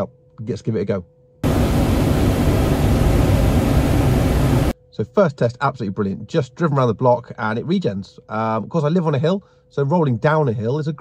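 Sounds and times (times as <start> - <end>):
loud static rushing noise: 1.4 - 4.8.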